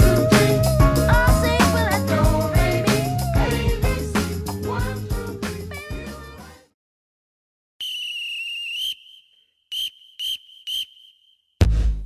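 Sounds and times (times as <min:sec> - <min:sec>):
whistle blasts: 0:07.8 - 0:11.4.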